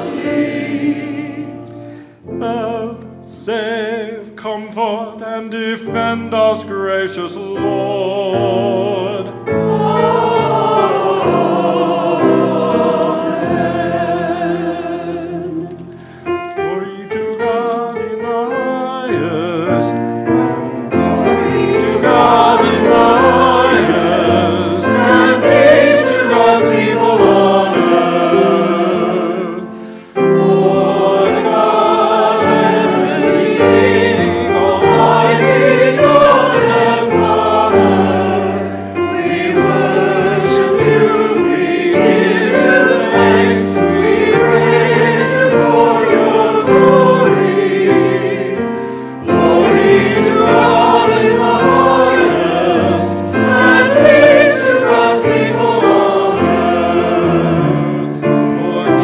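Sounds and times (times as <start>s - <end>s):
choir and congregation singing hymn: 0.0s - 59.0s.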